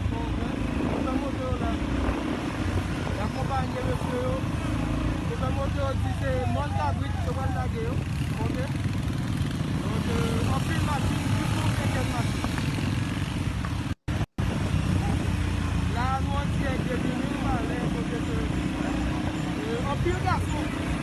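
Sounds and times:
people talking and calling: 0.0s - 12.8s, 14.7s - 21.0s
motorcycle engines running: 0.0s - 21.0s.

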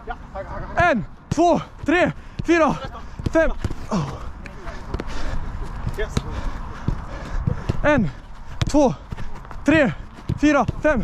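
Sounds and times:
boots kicking football: 0.8s - 11.0s
running footsteps: 1.0s - 11.0s.

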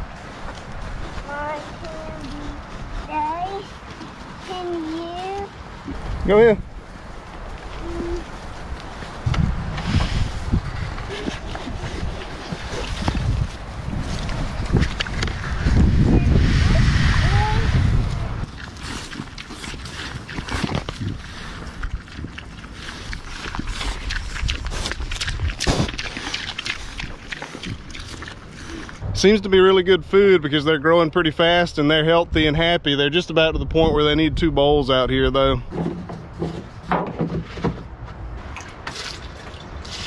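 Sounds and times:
pigs chewing and snuffling: 0.0s - 29.4s, 35.7s - 40.0s.

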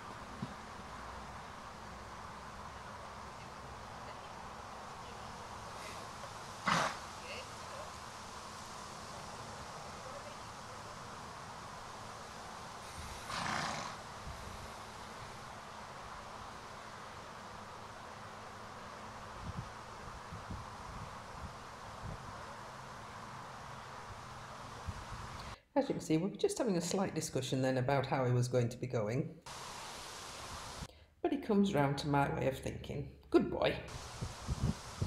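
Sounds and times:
leaves rustling: 0.0s - 25.6s, 29.5s - 30.9s, 33.9s - 35.0s
wind noise on microphone: 12.8s - 13.4s, 14.0s - 15.4s, 19.3s - 22.6s, 24.7s - 25.6s, 33.8s - 35.0s.

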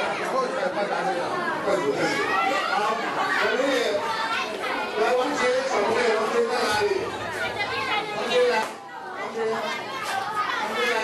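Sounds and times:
crowd chattering and calling out: 0.0s - 11.0s.

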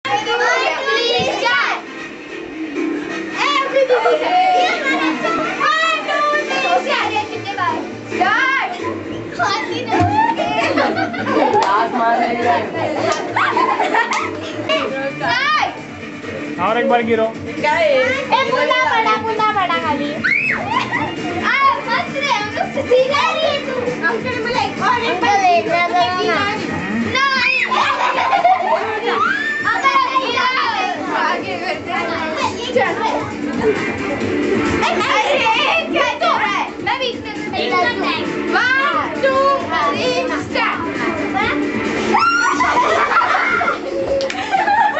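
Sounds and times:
girls calling out and chattering: 0.0s - 16.6s, 17.3s - 44.9s
dance music: 0.0s - 44.9s.

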